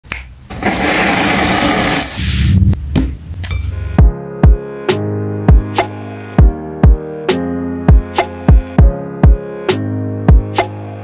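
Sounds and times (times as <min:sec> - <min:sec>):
finger snap: 0:00.0 - 0:00.4.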